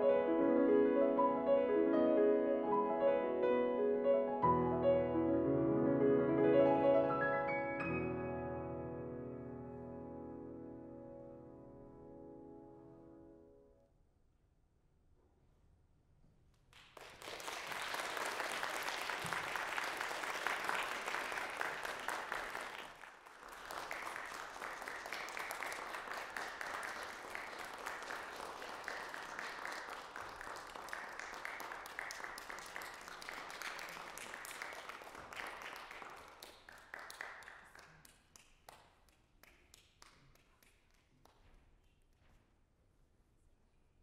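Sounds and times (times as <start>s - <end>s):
audience applauding: 16.7s - 38.8s.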